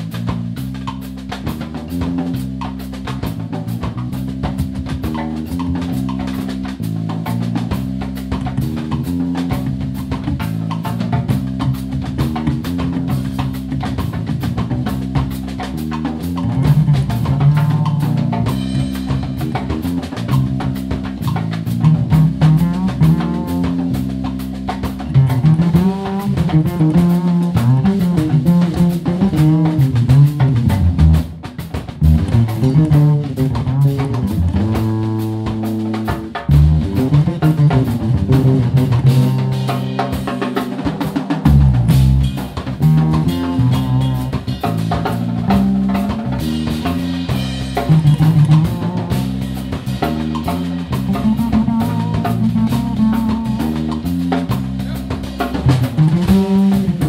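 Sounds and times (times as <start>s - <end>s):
double bass: 0.0s - 57.0s
drum kit playing: 0.0s - 57.0s
electric bass guitar: 0.0s - 57.0s.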